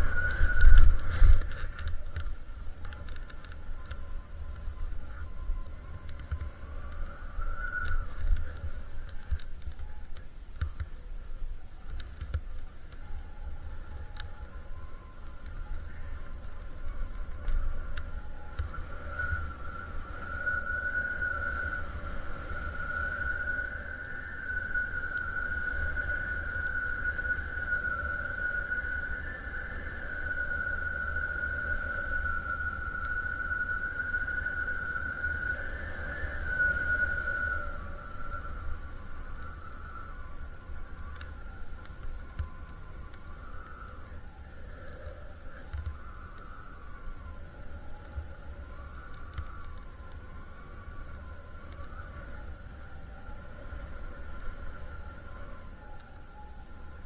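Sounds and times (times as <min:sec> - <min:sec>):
distant snowmobile engine whine: 0:00.0 - 0:57.0
wind rumbling on microphone: 0:00.0 - 0:57.0.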